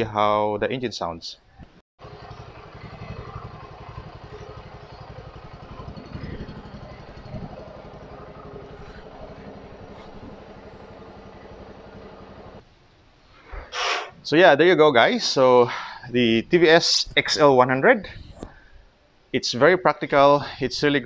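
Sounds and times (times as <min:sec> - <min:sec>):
moped engine idling: 0:02.0 - 0:12.6.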